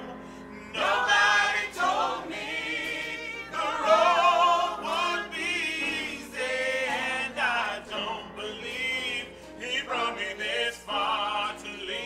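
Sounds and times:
group singing in harmony: 0.0s - 12.0s.

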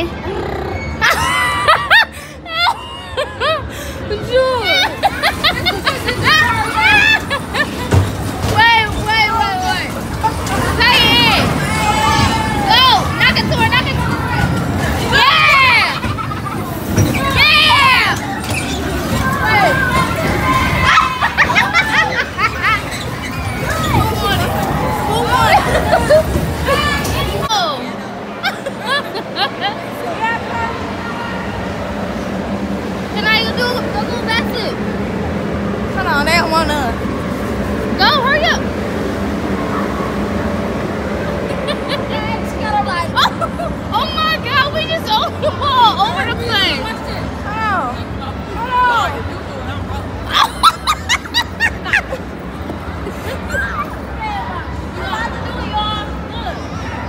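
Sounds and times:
children shouting and squealing: 0.0s - 32.2s, 49.9s - 57.0s
bumper cars rumbling: 0.0s - 57.0s
busy indoor hall din: 0.0s - 57.0s.

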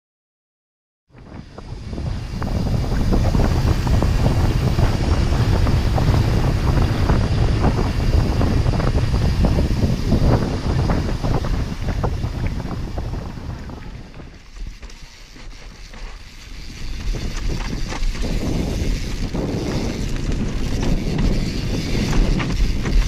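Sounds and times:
wind buffeting microphone: 1.1s - 23.0s
bike rattling over trail: 1.2s - 23.0s.

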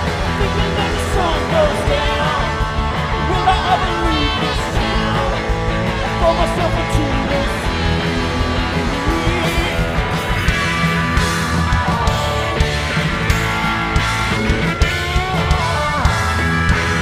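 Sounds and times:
bass guitar: 0.0s - 17.0s
drums: 0.0s - 17.0s
electric guitar: 0.0s - 17.0s.

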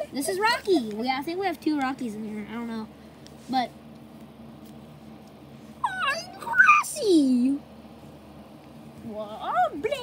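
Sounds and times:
child speaking in character voice: 0.0s - 3.8s, 5.8s - 7.7s, 9.0s - 10.0s
faint steady hum: 0.0s - 10.0s.

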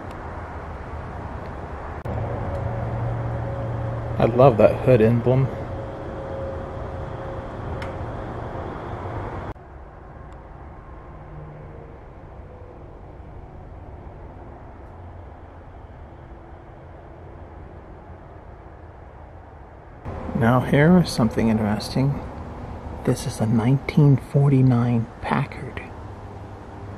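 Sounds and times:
low background noise: 0.0s - 26.9s.

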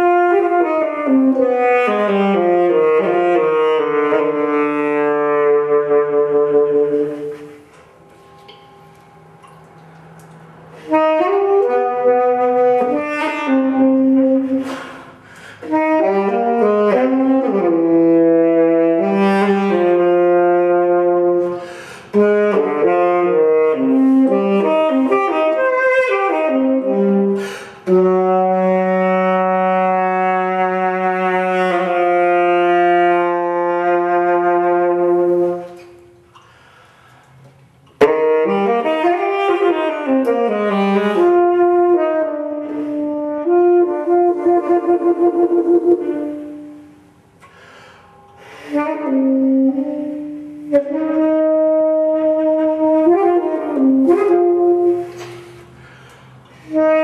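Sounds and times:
tenor saxophone playing jazz: 0.0s - 57.0s
saxophonist breathing: 14.4s - 15.8s, 21.5s - 22.2s, 27.3s - 27.9s, 35.1s - 37.8s, 46.4s - 49.1s, 54.8s - 56.8s.

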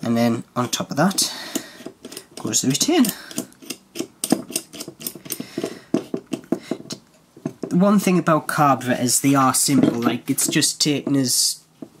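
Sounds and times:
metal cap screwing with clicks: 0.6s - 7.8s.

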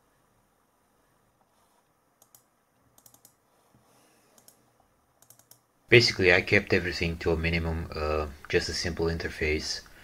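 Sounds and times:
computer clicks: 2.2s - 3.4s, 4.3s - 4.6s, 5.2s - 5.7s.

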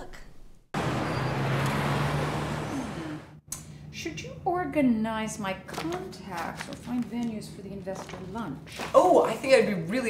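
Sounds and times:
city street traffic: 0.8s - 4.0s.

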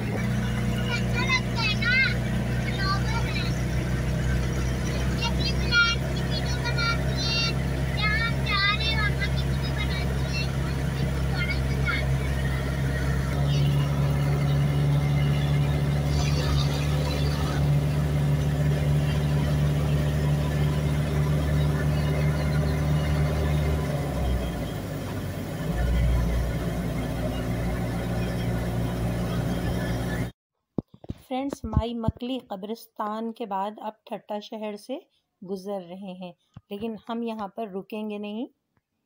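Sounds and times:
van engine and road drone: 0.0s - 30.4s.

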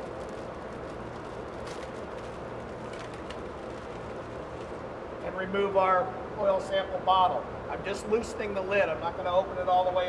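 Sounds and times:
plastic bag crackling: 0.0s - 4.8s.

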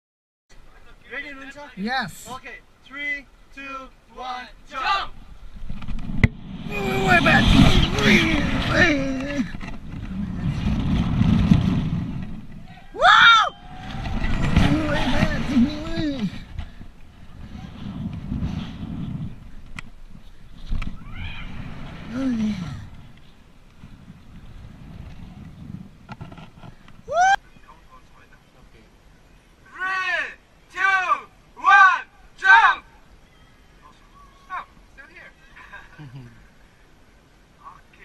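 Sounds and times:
wind buffeting microphone: 5.1s - 27.4s
man yelling and screaming: 6.7s - 9.0s, 12.7s - 13.6s, 27.1s - 27.4s, 29.7s - 32.9s.

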